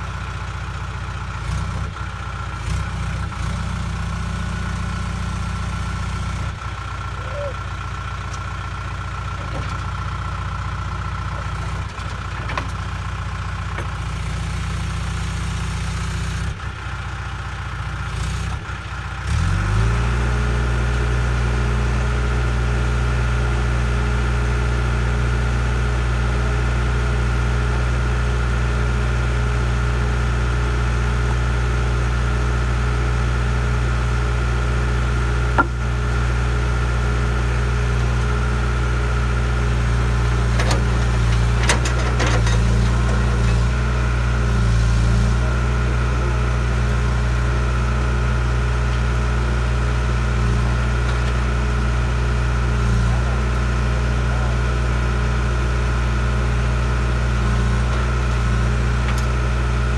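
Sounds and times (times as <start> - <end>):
diesel engine idling: 0.0 - 59.9
engine knocks: 35.5 - 36.2.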